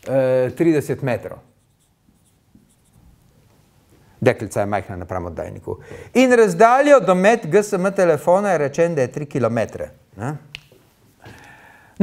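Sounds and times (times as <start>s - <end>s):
marker squeaking on whiteboard: 1.5s - 3.2s.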